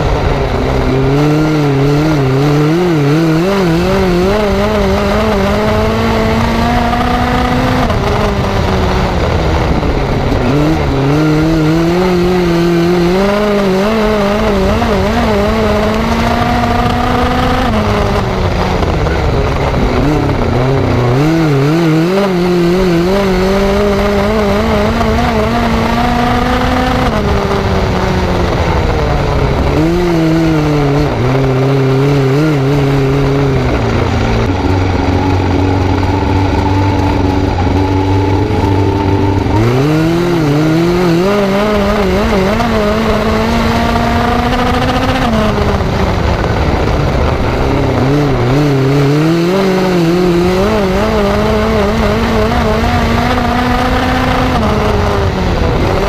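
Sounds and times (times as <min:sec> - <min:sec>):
race car engine at speed: 0:00.0 - 0:56.0.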